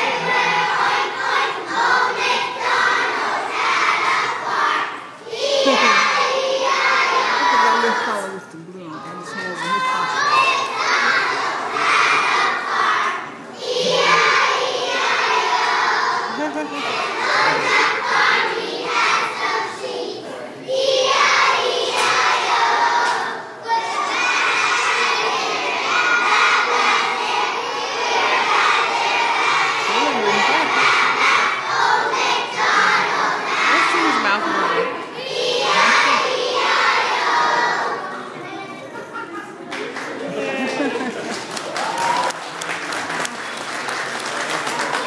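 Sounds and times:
children singing in unison: 0.0 - 8.2, 9.8 - 38.5.

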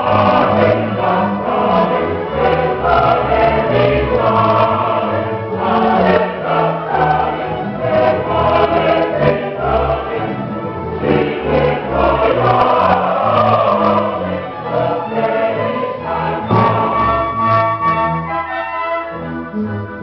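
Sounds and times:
mixed choir singing: 0.0 - 18.0
keyboard continuo: 0.0 - 20.0
string orchestra: 0.0 - 20.0.

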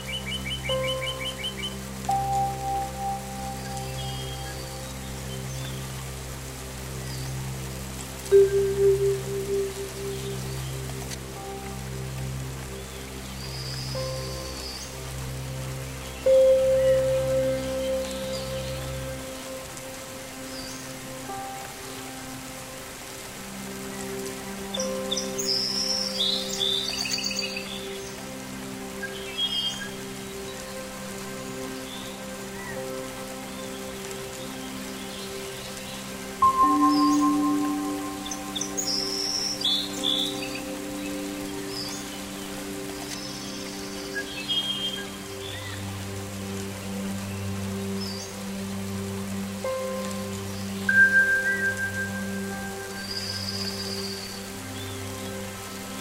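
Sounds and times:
meditation music sustained tones: 0.0 - 56.0
steady rain: 0.0 - 56.0
birds chirping: 31.8 - 45.9.

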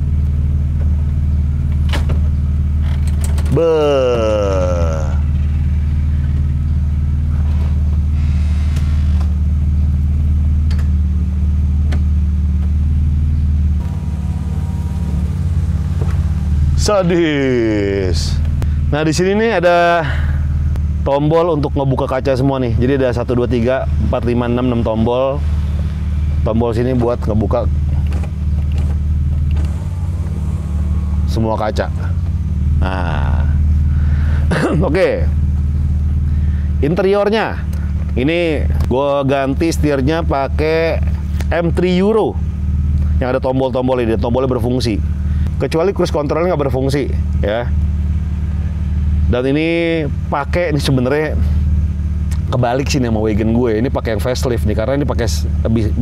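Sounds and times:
car engine idling: 0.0 - 56.0
mechanical creak: 2.8 - 3.6
power window motors running: 5.2 - 11.0, 11.6 - 18.6, 24.1 - 32.8.

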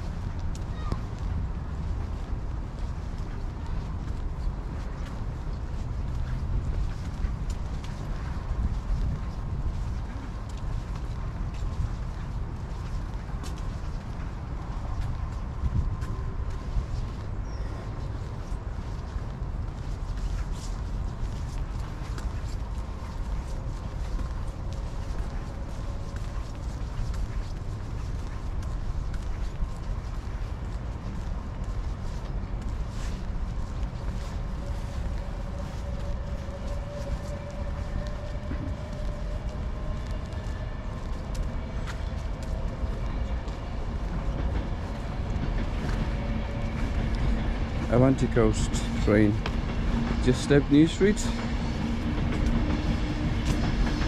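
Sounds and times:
city traffic rumble: 0.0 - 54.0
footsteps on paving: 0.0 - 54.0.

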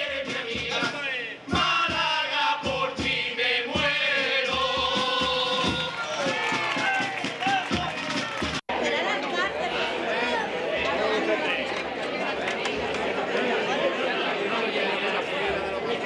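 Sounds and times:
men's group singing: 0.0 - 6.3
low drum beats: 0.0 - 8.7
crowd chatter: 0.0 - 16.0.

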